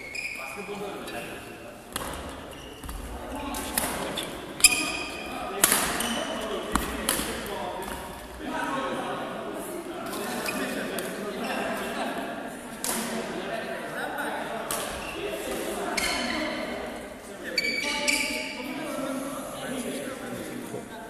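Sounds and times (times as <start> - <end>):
indistinct voices in a hall: 0.0 - 21.0.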